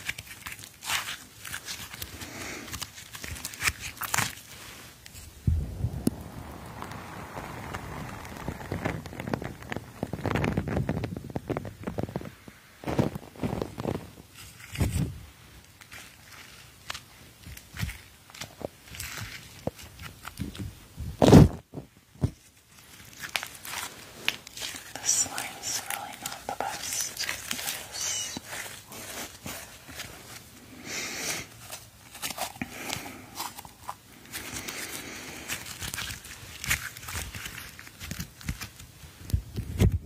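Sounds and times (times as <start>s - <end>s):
small wet clicks and crackles: 0.0s - 5.2s, 6.0s - 20.8s, 22.4s - 30.5s, 31.5s - 40.0s
person whispering: 24.8s - 29.3s
hissy breath: 26.8s - 28.7s, 30.6s - 31.6s.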